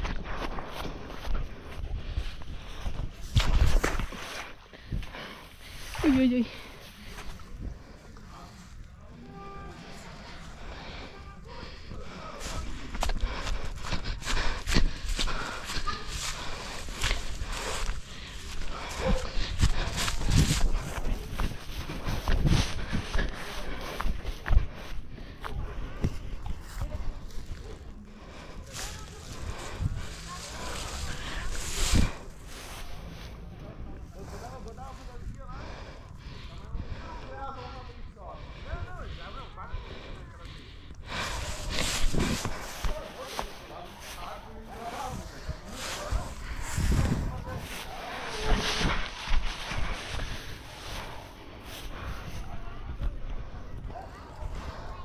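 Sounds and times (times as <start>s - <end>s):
footsteps through tall grass: 0.0s - 8.8s, 11.6s - 35.1s, 41.1s - 53.2s.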